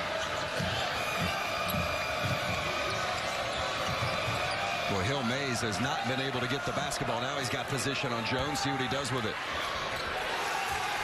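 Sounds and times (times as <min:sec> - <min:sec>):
arena crowd noise: 0:00.0 - 0:11.0
basketball dribbled on hardwood: 0:00.6 - 0:04.6.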